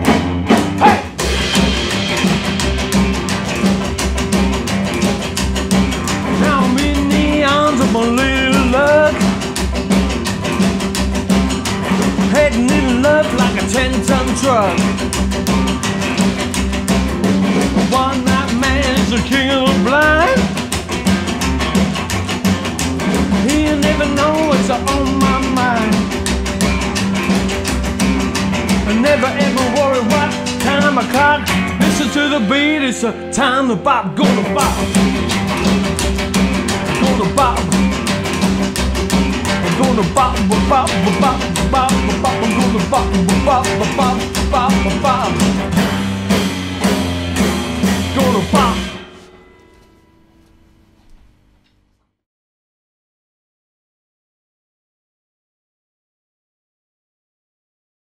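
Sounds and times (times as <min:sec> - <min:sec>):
steady drum beat: 0:00.0 - 0:32.8, 0:34.2 - 0:49.1
upright bass: 0:00.0 - 0:49.3
strummed acoustic guitar: 0:00.0 - 0:51.2
electric guitar lead with bent notes: 0:00.0 - 0:51.4.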